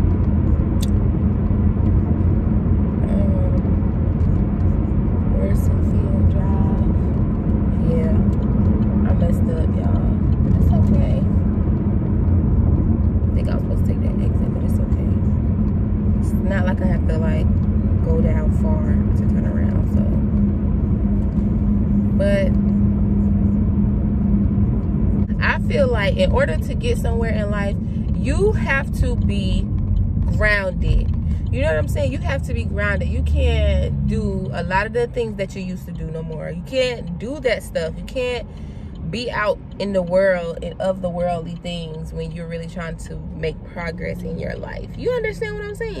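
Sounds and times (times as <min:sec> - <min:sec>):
car road and engine rumble: 0:00.0 - 0:46.0
constant low hum: 0:00.0 - 0:46.0.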